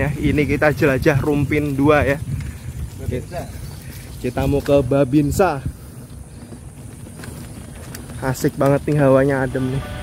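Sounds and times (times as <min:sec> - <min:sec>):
bike rattling over bumps: 0:00.0 - 0:09.8
bike tyre rolling on dirt: 0:00.0 - 0:10.0.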